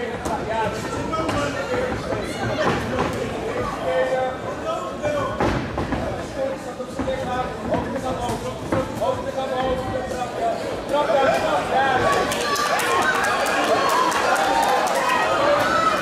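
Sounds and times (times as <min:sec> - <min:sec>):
people shouting in a hall: 0:11.1 - 0:16.0.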